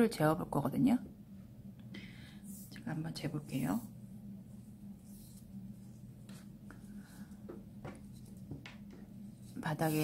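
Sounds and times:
steady low hum: 0.0 - 10.0
hands rustling and tapping: 6.1 - 10.0.

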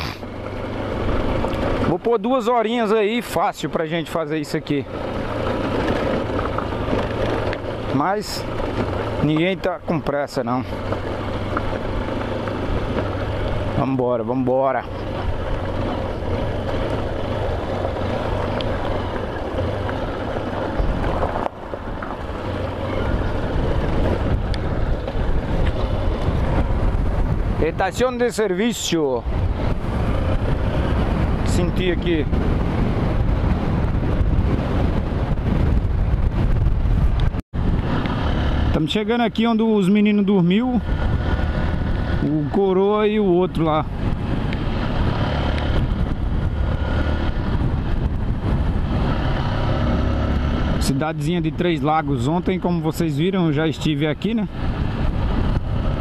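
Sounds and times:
tyres on gravel: 0.0 - 32.0
wind rushing on helmet: 0.0 - 56.0.

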